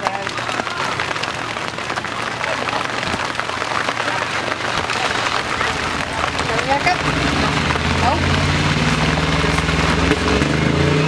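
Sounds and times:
crowd murmur: 0.0s - 11.0s
rain pattering: 0.0s - 11.0s.

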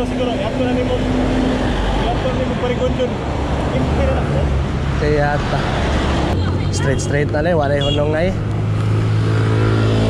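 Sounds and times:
road traffic noise: 0.0s - 10.0s.

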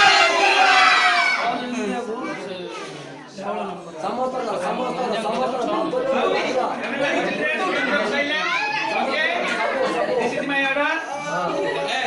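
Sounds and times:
crowd hubbub of voices: 0.0s - 12.0s.

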